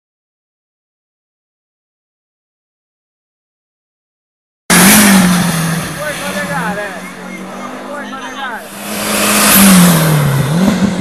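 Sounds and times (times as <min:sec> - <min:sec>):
race car engine at high revs: 0:04.7 - 0:11.0.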